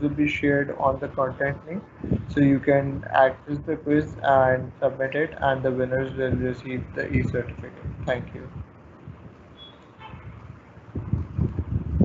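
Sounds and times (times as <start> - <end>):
low microphone background noise: 0.0 - 12.0.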